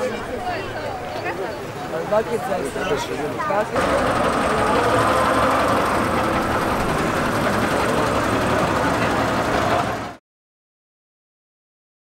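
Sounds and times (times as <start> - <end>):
faint crowd chatter: 0.0 - 10.2
car engine idling: 3.8 - 10.2.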